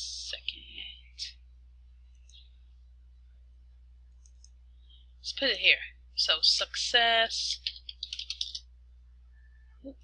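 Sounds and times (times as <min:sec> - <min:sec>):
faint low hum: 0:00.0 - 0:10.0
computer keyboard keystrokes: 0:07.6 - 0:08.6.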